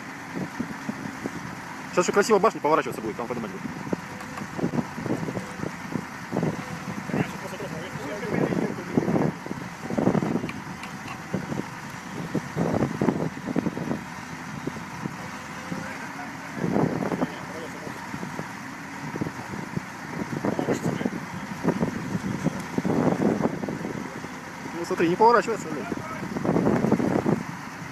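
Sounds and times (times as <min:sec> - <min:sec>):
heavy machinery engines running: 0:00.0 - 0:27.9
people talking indistinctly: 0:01.9 - 0:05.8, 0:06.4 - 0:10.3, 0:15.2 - 0:18.4, 0:20.2 - 0:22.0, 0:24.0 - 0:26.4.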